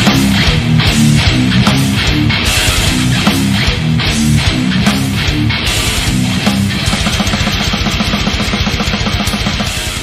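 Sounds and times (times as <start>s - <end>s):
heavy metal music: 0.0s - 10.0s.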